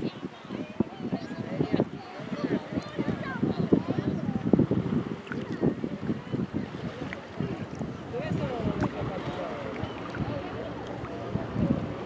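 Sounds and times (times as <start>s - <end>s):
distant voices: 0.0s - 12.0s
small waves lapping: 0.0s - 12.0s
wind buffeting the microphone: 0.0s - 12.0s.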